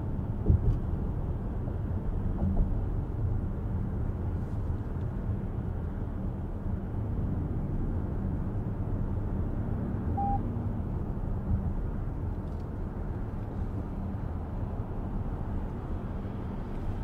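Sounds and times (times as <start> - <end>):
car interior road rumble: 0.0 - 17.0
short electronic beep: 10.1 - 10.4.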